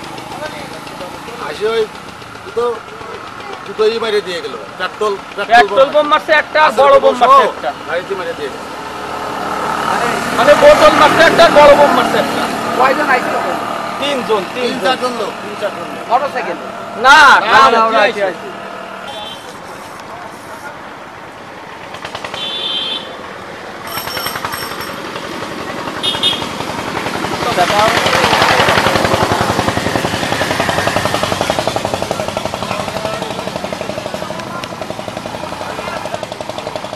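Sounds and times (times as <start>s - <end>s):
small engine knocking: 0.0s - 6.9s, 21.7s - 22.8s, 23.7s - 36.9s.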